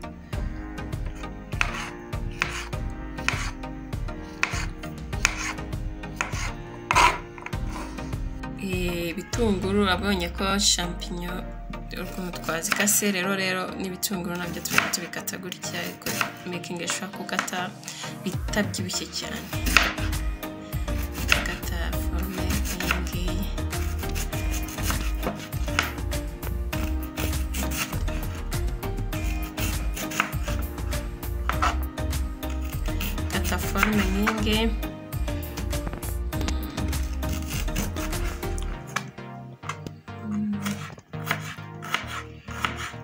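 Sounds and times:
knife slicing onion: 1.5s - 3.6s, 4.3s - 8.0s, 14.5s - 15.1s, 15.8s - 17.5s, 19.5s - 20.3s, 20.9s - 28.5s, 29.1s - 34.5s, 36.6s - 39.1s, 40.6s - 43.0s
blade striking cutting board: 1.6s - 3.6s, 4.4s - 5.6s, 6.2s - 7.8s, 14.7s - 15.0s, 19.6s - 20.1s, 23.8s - 26.0s, 29.6s - 30.7s, 31.5s - 31.8s, 37.0s - 39.1s, 40.6s - 42.9s.

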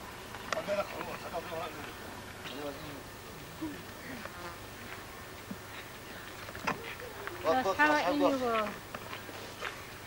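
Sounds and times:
flying insect buzzing: 3.0s - 9.7s.

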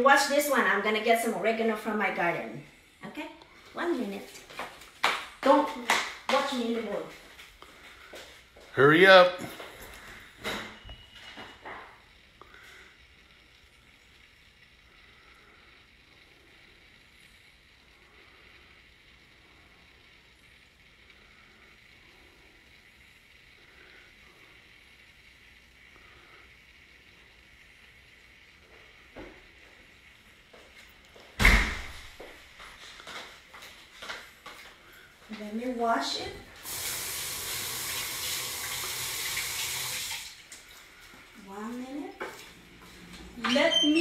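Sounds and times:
faint room hum: 0.0s - 44.0s
door banging shut: 31.4s - 32.1s
soft knocks and footsteps: 32.0s - 35.5s, 41.0s - 43.6s.

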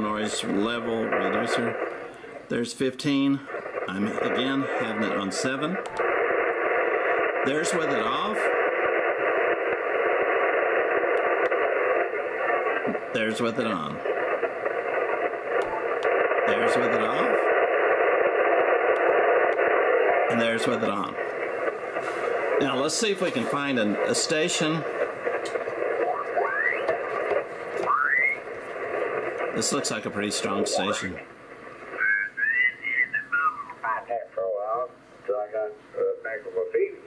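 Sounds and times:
radio speaker hissing: 0.0s - 37.0s
faint clicks: 11.0s - 11.7s, 25.3s - 25.6s
rising radio chirp: 23.7s - 31.1s.

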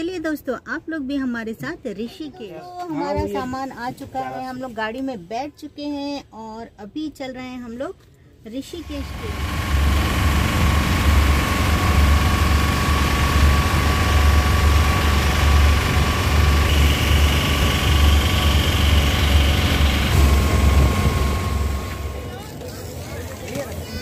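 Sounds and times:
steady whine: 8.8s - 24.0s
vehicle engine and road rumble: 8.8s - 24.0s.

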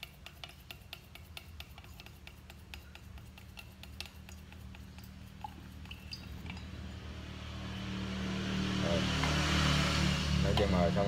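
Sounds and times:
stick stirring paint in tin: 0.0s - 6.7s
vehicle engine and road noise: 1.8s - 11.0s
low hum: 3.7s - 11.0s.

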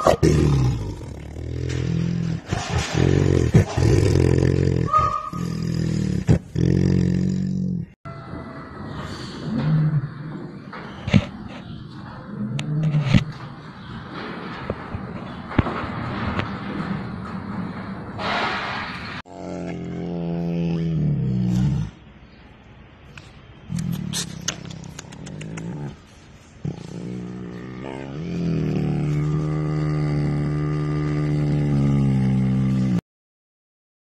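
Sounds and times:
tiger growling: 0.0s - 7.9s, 19.3s - 22.0s, 23.7s - 33.0s
big cat roaring: 0.0s - 8.0s, 19.3s - 22.0s, 23.7s - 26.0s, 26.6s - 33.0s.

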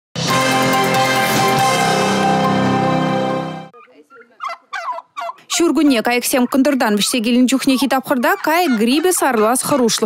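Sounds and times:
turkeys calling: 3.7s - 10.0s.

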